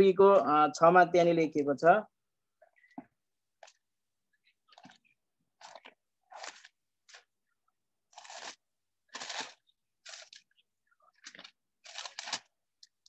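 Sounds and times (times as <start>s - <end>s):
book pages rustling: 2.7s - 13.0s.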